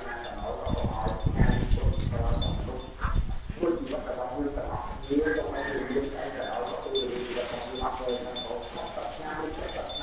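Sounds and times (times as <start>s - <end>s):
oxen munching grass: 0.0s - 10.0s.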